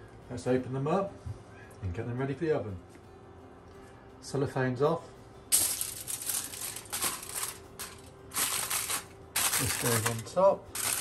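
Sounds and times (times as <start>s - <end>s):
aluminium foil crinkling: 5.6s - 11.0s.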